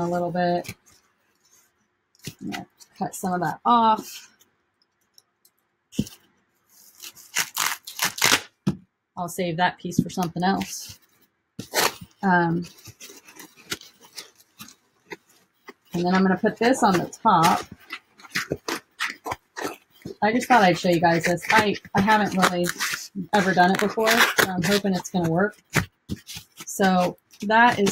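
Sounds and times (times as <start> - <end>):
scissors scraping through foam: 6.0 - 8.5, 10.2 - 27.9.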